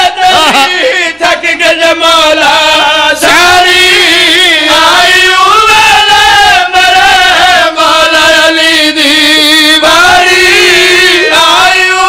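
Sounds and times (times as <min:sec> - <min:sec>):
man chanting through loudspeaker: 0:00.0 - 0:12.0.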